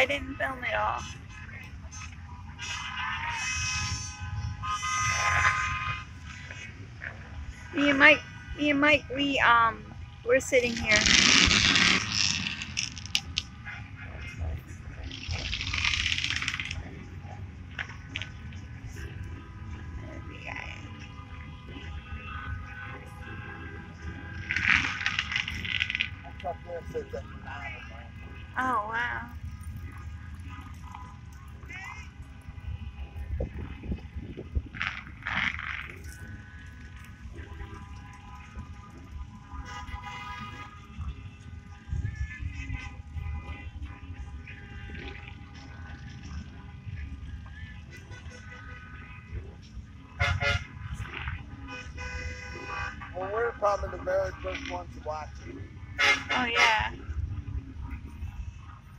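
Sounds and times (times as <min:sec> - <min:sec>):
traffic rumble: 0:00.0 - 0:58.9.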